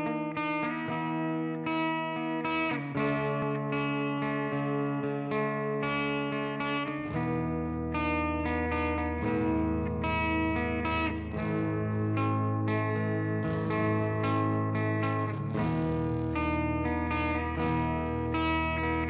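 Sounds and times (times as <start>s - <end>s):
electric guitar with effects: 0.0s - 19.0s.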